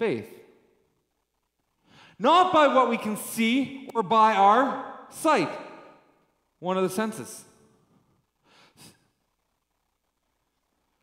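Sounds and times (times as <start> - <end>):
person breathing into microphone: 1.8 - 2.2.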